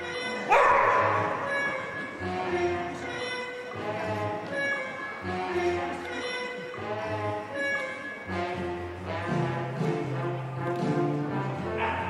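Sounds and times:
orchestral music: 0:00.0 - 0:12.0
dog barking: 0:00.5 - 0:01.3, 0:11.8 - 0:12.0.

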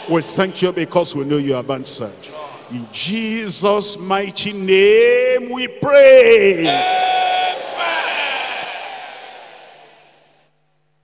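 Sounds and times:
congregation calling out: 0:00.0 - 0:10.4.

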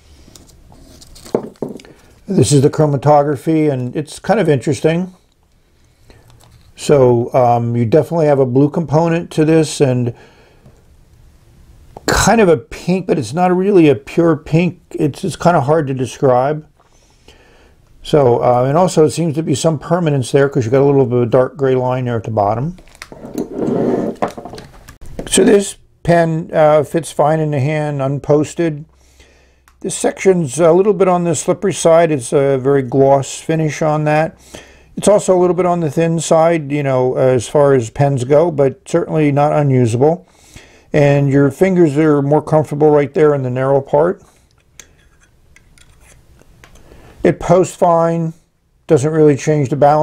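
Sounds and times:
pen handling rubbing: 0:44.3 - 0:46.8.

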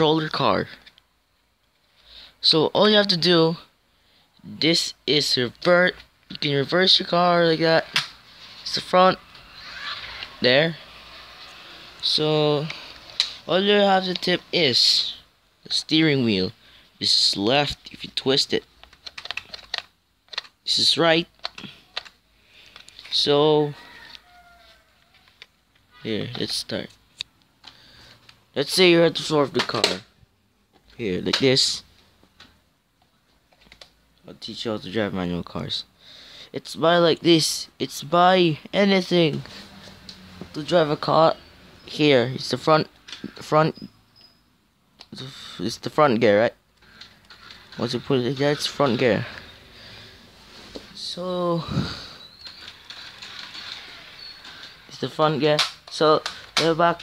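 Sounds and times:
toy car motor whine: 0:09.4 - 0:12.0, 0:52.4 - 0:54.8.

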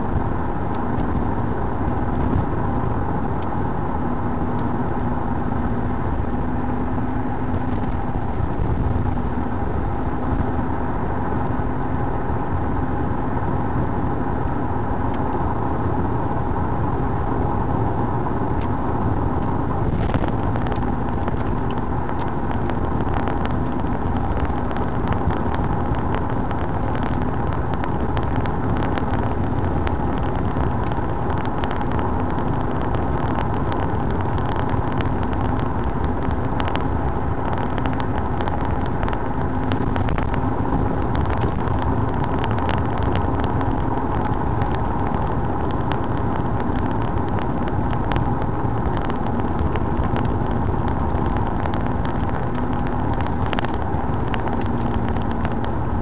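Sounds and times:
car engine cruising: 0:00.0 - 0:56.0
tyre noise inside car: 0:00.0 - 0:56.0
small ticks and rattles: 0:19.3 - 0:56.0.

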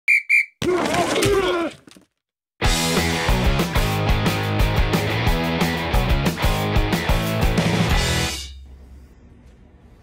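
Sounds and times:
whistle blasts: 0:00.0 - 0:00.6.

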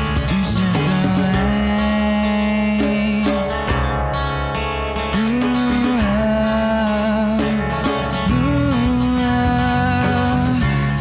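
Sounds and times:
djembe played by hand: 0:00.0 - 0:04.3, 0:05.0 - 0:10.6
bass guitar: 0:00.0 - 0:11.0
strummed acoustic guitar: 0:00.0 - 0:11.0.

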